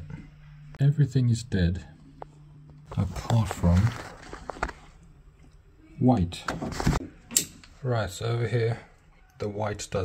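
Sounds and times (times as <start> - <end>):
faint handling noise: 2.1 - 5.6.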